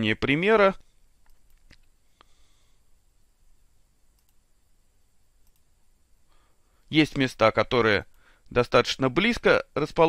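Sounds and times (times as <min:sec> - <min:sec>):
faint short clicks: 0:04.2 - 0:04.4.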